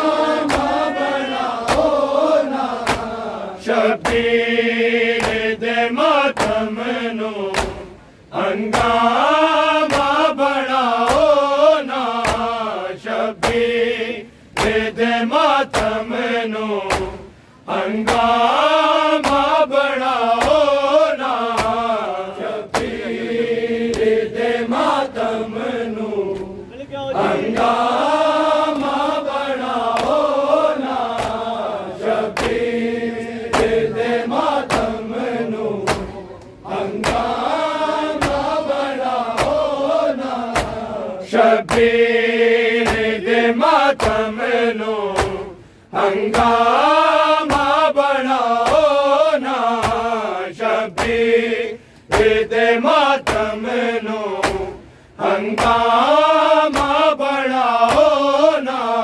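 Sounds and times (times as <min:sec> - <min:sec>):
rhythmic chest-beating slaps: 0:00.0 - 0:26.6, 0:27.2 - 0:59.0
men chanting in unison: 0:00.0 - 0:59.0.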